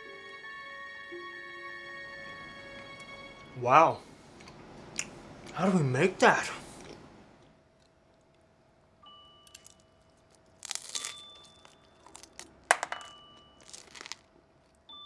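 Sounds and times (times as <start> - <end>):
person chewing crunchy food: 6.6 - 7.0, 9.5 - 14.8.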